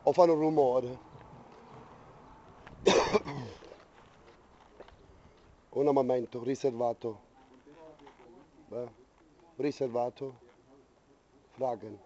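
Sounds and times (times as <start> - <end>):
man coughing: 2.8 - 3.6.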